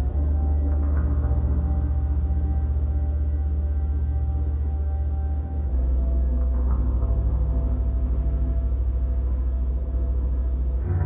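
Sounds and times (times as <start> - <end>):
deep low rumble: 0.0 - 11.0
sustained drone tones: 0.0 - 11.0.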